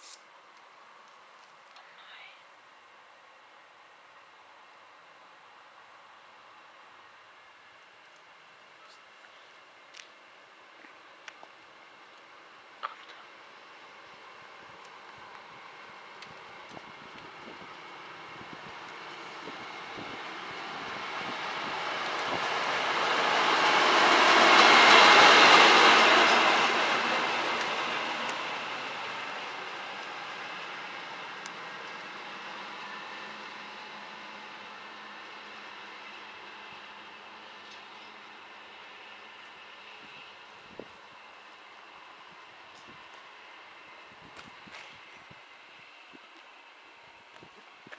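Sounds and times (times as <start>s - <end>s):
train passing by: 9.6s - 47.9s.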